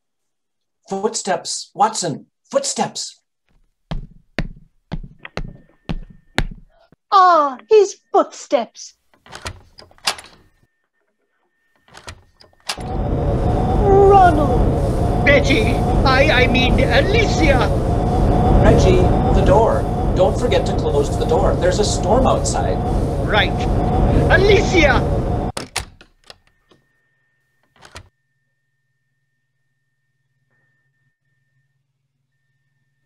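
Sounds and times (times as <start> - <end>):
sharp footstep knocks: 3.9 - 6.7
wooden door latch clicks: 9.2 - 10.5, 11.9 - 12.3, 27.8 - 28.1
door clatter: 9.2 - 10.6, 11.8 - 12.8, 27.7 - 28.1.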